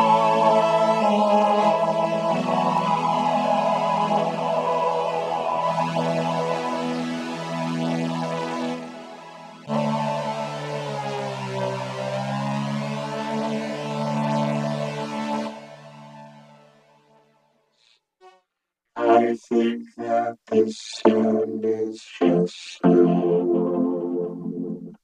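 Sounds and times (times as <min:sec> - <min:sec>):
synthesizer chords: 0:00.0 - 0:16.7, 0:19.0 - 0:25.0.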